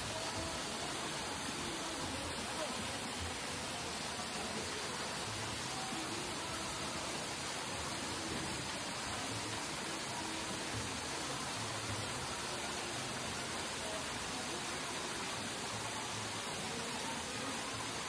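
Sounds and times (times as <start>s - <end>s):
waterfall splashing into pool: 0.0s - 18.0s.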